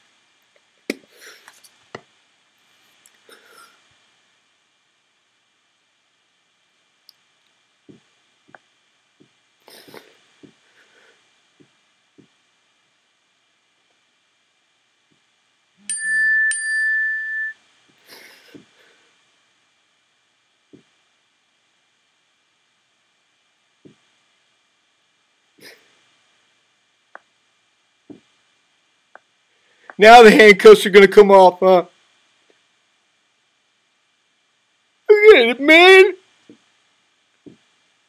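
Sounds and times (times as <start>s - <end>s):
low hiss: 0.0s - 38.0s
high tone beep: 15.8s - 17.6s.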